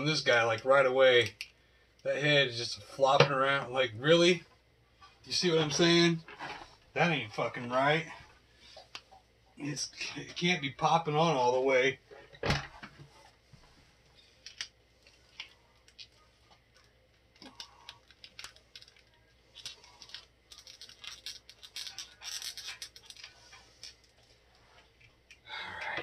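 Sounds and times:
plastic toy clicks and rattles: 0:17.4 - 0:24.0.

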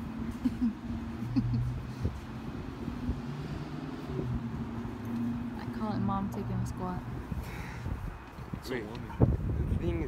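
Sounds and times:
city traffic engine hum: 0:00.0 - 0:10.0.

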